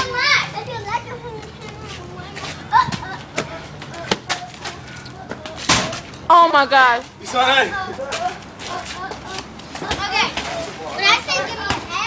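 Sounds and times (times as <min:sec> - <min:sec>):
children shouting: 0:00.0 - 0:01.7.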